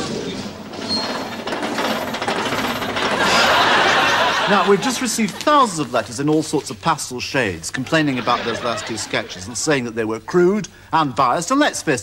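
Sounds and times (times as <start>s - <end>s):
rapid rattling clatter: 0.4s - 6.0s.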